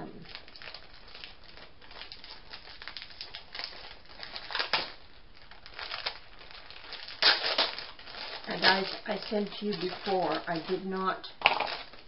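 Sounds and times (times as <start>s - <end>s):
packaging crinkling: 0.0s - 12.0s.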